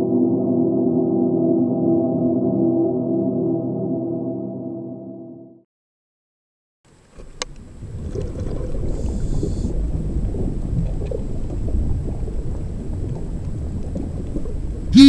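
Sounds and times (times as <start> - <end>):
underwater rumble: 7.4 - 14.9.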